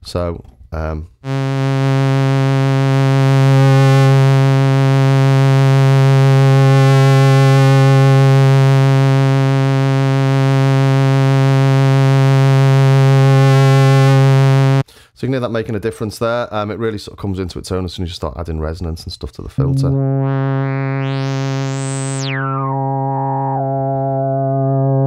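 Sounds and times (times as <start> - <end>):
synthesizer low buzzy note: 1.2 - 14.8, 19.6 - 25.0.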